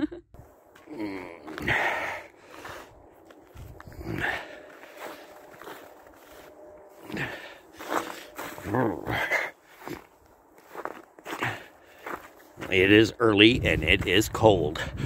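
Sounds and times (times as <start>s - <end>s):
footsteps on icy pavement: 0.4s - 13.4s.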